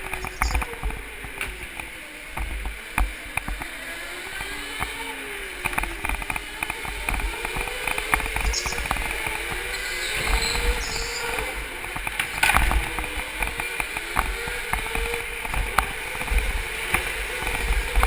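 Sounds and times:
go-kart motor whine: 0.0 - 18.0.

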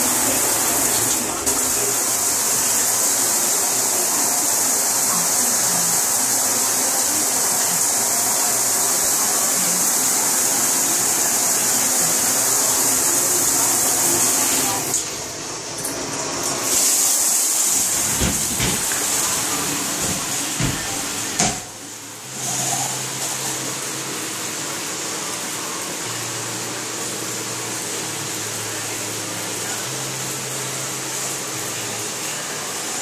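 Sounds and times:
shower jets spraying on glass: 0.0 - 33.0.

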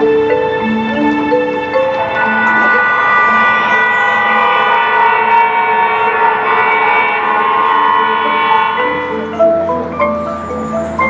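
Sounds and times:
marching band sustained chord: 0.2 - 11.0.

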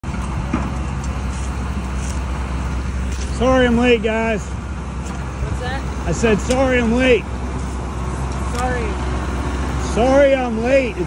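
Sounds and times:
construction machine engine rumble: 0.0 - 11.0
outdoor work-site noise: 0.0 - 11.0.

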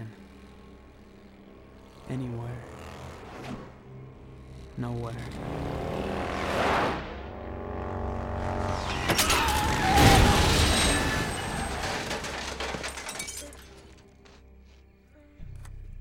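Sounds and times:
motorcycle scraping along asphalt: 0.0 - 9.0
film score: 0.0 - 16.0
crash impacts: 8.8 - 14.0.

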